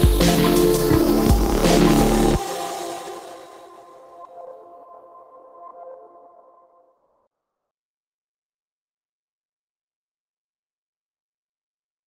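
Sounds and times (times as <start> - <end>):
electronic music chord: 0.0 - 6.9.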